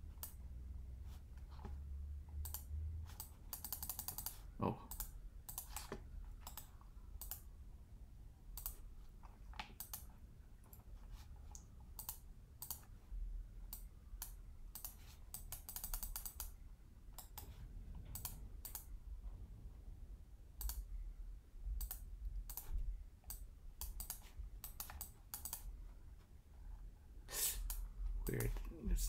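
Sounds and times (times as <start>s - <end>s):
mouse clicks: 2.4s - 7.4s, 8.6s - 8.8s, 9.5s - 10.8s, 11.5s - 12.9s, 21.8s - 25.7s
computer keyboard clicks: 2.4s - 7.5s, 8.6s - 8.8s, 9.5s - 10.8s, 11.6s - 12.9s, 13.7s - 16.6s, 17.2s - 18.9s, 20.6s - 20.9s, 21.8s - 25.7s.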